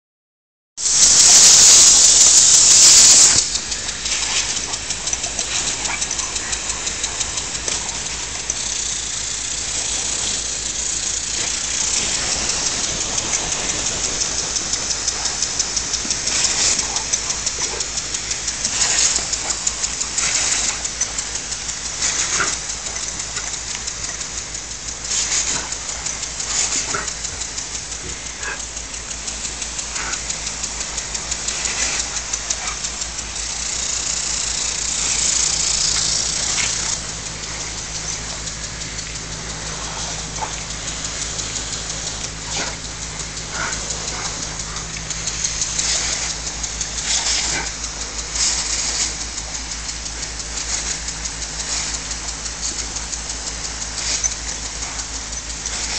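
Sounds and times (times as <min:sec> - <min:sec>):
lawn sprinkler spraying water: 0:00.8 - 0:55.9.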